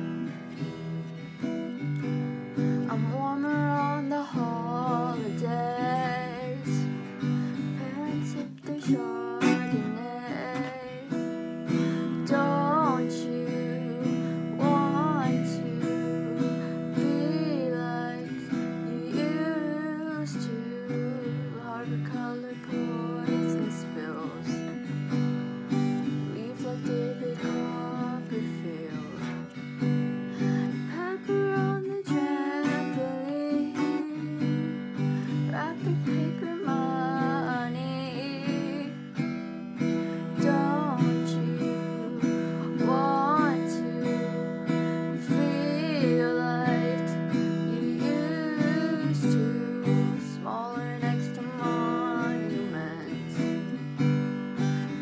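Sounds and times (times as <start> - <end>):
acoustic guitar strumming: 0.0 - 55.0
girl singing: 0.0 - 55.0.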